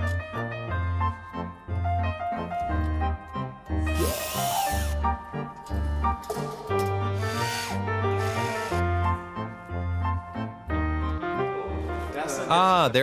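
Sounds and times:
cordless drill whirring: 4.0 - 5.0, 7.2 - 8.8.

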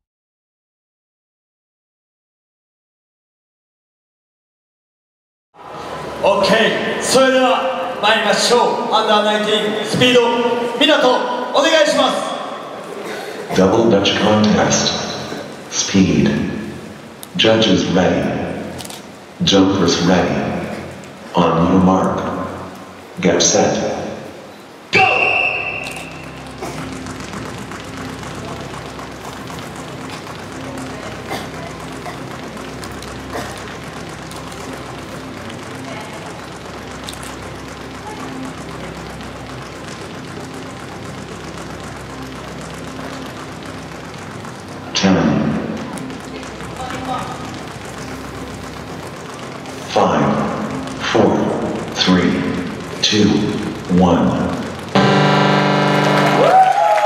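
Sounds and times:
loud start signal: 55.0 - 56.9.

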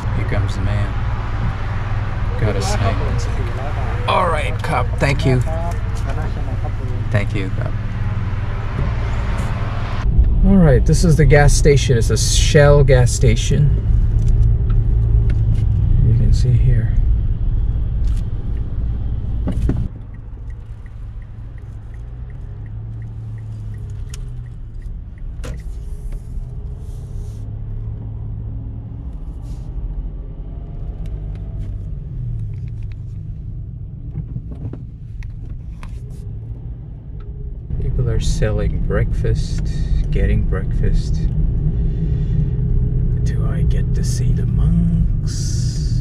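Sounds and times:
car engine and road rumble: 0.0 - 46.0.

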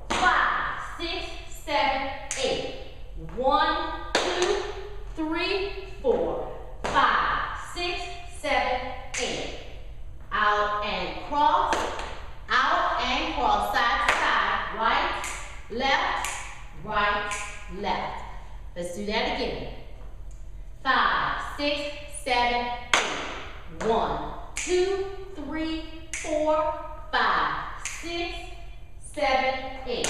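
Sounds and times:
woman speaking: 0.0 - 9.7, 10.3 - 11.9, 12.5 - 19.8, 20.8 - 22.9, 23.7 - 30.0.

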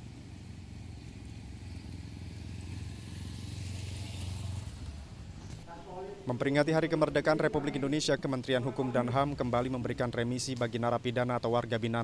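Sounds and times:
motorcycle engine: 0.0 - 6.2.

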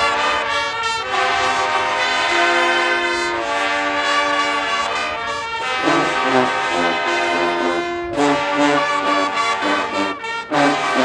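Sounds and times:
brass band playing chords: 0.0 - 11.0.

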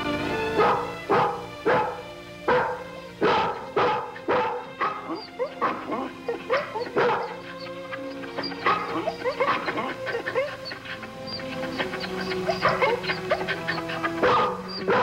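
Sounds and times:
background music: 0.0 - 15.0
dog yipping: 0.4 - 15.0
dog barking: 0.5 - 15.0.

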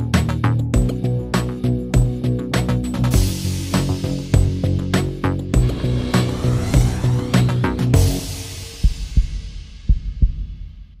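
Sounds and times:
closing theme music chord: 5.6 - 8.9.

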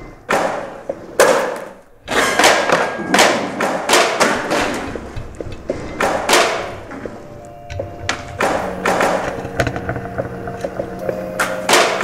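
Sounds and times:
heavy construction bangs echoing: 0.0 - 12.0.

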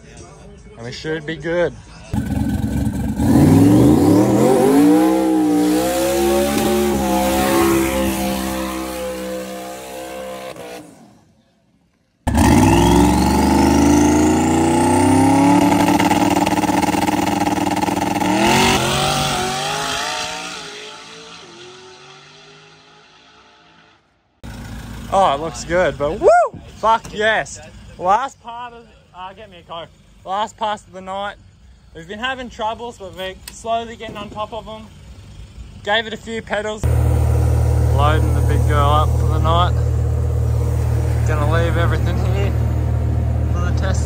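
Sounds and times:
drag car engine accelerating: 2.2 - 11.3, 12.3 - 25.8, 36.8 - 44.0.

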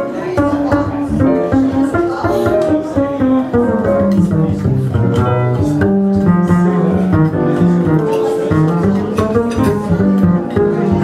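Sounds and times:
acoustic piano: 0.0 - 11.0
upright double bass: 0.0 - 11.0.

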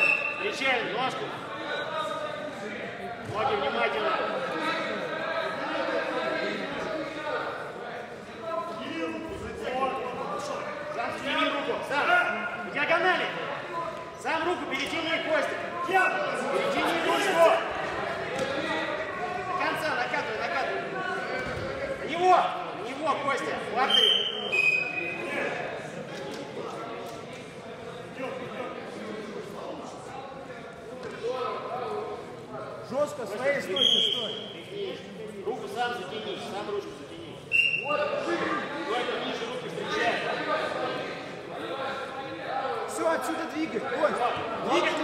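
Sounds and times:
voices talking and calling out: 0.0 - 45.0.

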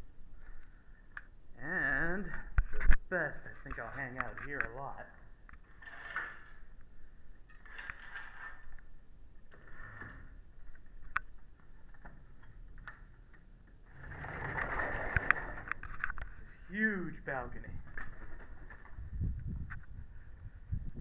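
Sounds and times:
curtains sliding along rod: 5.7 - 6.6, 7.6 - 8.7, 13.9 - 15.9
sliding glass door opening: 9.5 - 10.4, 13.9 - 16.1.

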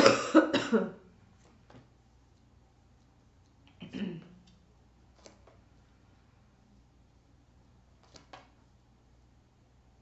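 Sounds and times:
woman coughing: 0.0 - 1.0.

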